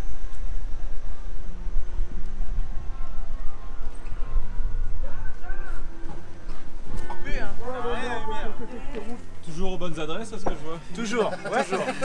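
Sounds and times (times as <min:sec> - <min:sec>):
wind rumble on microphone: 0:00.0 - 0:09.5
road noise: 0:00.0 - 0:12.0.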